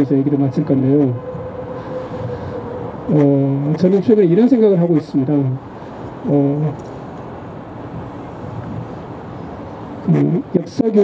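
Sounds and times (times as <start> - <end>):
distant street traffic hum: 0.0 - 11.0.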